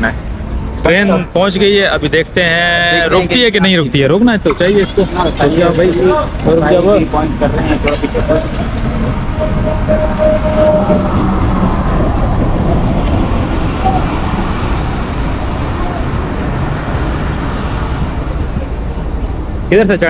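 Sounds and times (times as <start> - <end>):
train wheels rumbling on rails: 4.2 - 19.9.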